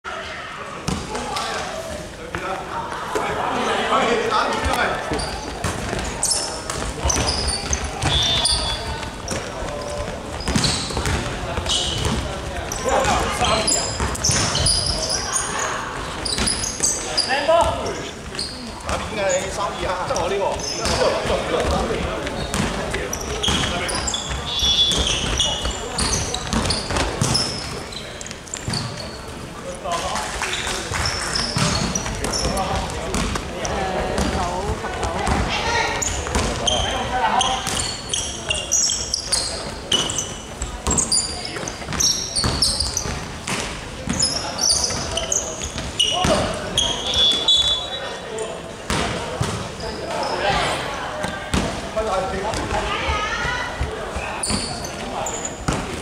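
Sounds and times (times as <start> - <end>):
shoe squeaks: 4.7 - 21.5, 22.2 - 33.0, 35.6 - 43.3, 44.0 - 48.6, 49.4 - 50.8, 53.4 - 55.8
basketball bouncing: 10.3 - 12.3, 20.8 - 27.8, 34.2 - 36.8, 41.9 - 44.2.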